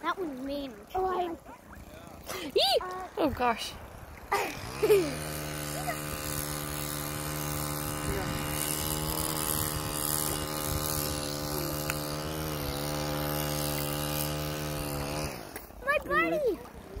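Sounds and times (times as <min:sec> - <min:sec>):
engine humming drone: 0:00.0 - 0:17.0.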